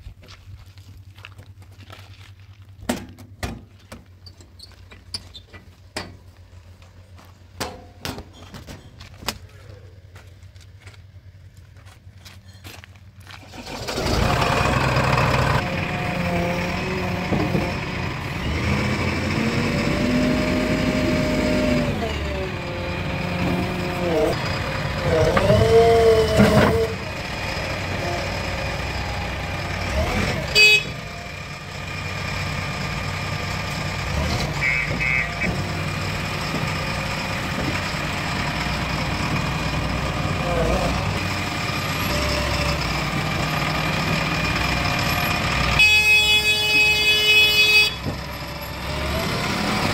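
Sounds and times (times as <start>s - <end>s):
diesel engine running: 3.7s - 49.9s.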